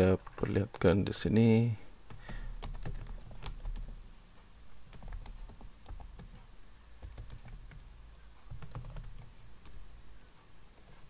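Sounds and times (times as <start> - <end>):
computer keyboard typing: 2.1 - 4.0, 4.9 - 9.9.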